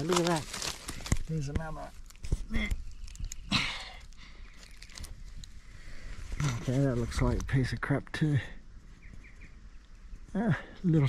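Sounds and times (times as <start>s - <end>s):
gravel scraping rustle: 0.0s - 7.9s.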